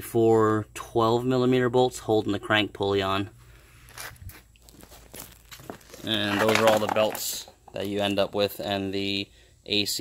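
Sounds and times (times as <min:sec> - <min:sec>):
camera handling scuffs and clicks: 0:03.8 - 0:06.1.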